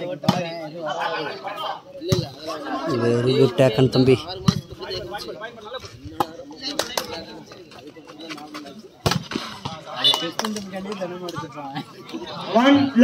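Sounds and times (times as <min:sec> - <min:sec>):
voices of players and onlookers: 0:00.0 - 0:13.0.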